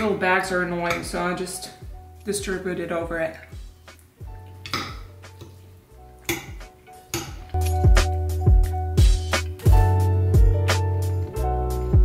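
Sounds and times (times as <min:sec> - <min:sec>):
background music with beat: 0:03.6 - 0:05.6, 0:06.3 - 0:12.0.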